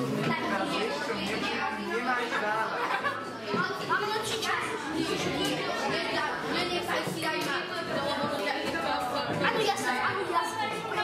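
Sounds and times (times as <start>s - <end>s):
indoor chatter of voices: 0.0s - 11.0s.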